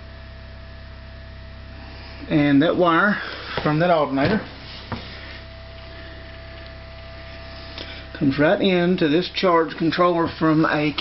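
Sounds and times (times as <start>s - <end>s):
electrical hum and buzz: 0.0s - 11.0s
thin steady whine: 0.0s - 11.0s.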